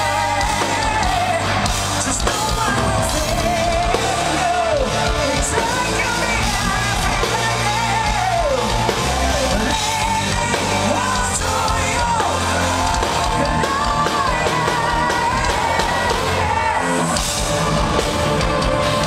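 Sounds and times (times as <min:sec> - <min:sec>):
man singing: 0:00.0 - 0:17.2
live metal band playing: 0:00.0 - 0:19.0.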